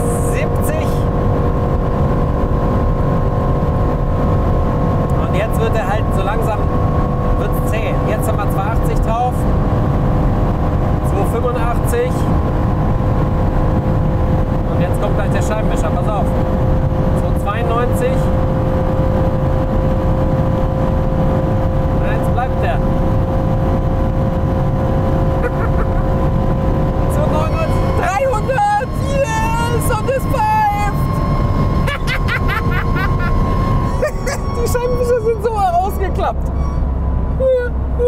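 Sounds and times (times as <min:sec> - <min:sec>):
car engine at high speed: 0:00.0 - 0:38.0
wind and road noise: 0:00.0 - 0:38.0
wavering high squeals: 0:27.1 - 0:37.8.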